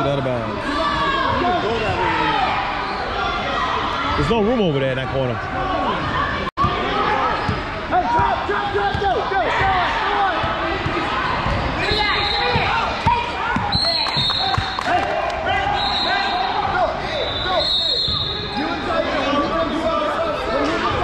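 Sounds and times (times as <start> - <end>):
voices in a hall: 0.0 - 21.0
sneaker squeaks: 11.4 - 14.8, 17.2 - 18.8.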